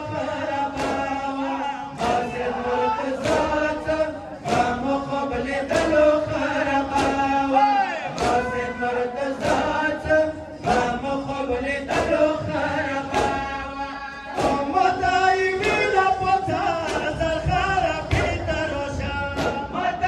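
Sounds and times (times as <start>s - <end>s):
men chanting: 0.0s - 20.0s
hands slapping chests: 0.7s - 1.2s, 2.0s - 2.5s, 3.2s - 3.8s, 4.4s - 4.9s, 5.7s - 6.0s, 6.9s - 7.4s, 8.1s - 8.6s, 9.4s - 9.8s, 10.6s - 11.0s, 11.9s - 12.3s, 13.1s - 13.6s, 14.3s - 14.8s, 15.6s - 16.1s, 16.8s - 17.3s.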